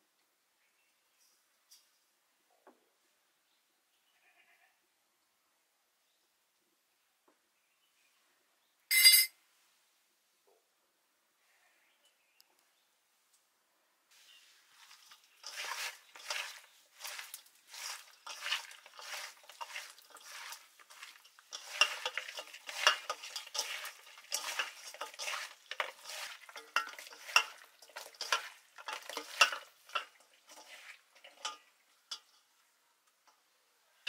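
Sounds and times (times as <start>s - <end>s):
wet squelching of fish in metal bowl: 14.4s - 33.5s.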